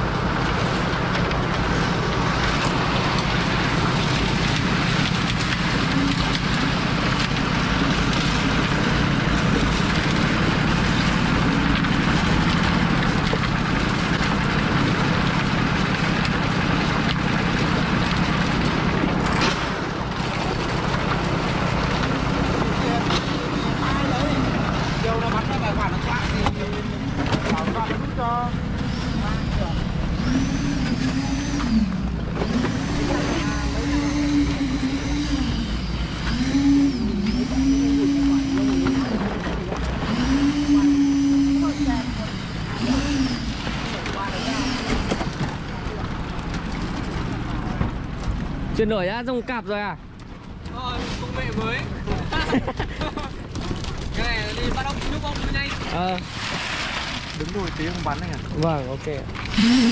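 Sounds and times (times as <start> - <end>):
concrete mixer engine running: 0.0 - 59.9
motor whine revving up and down: 28.4 - 45.7, 59.0 - 59.9.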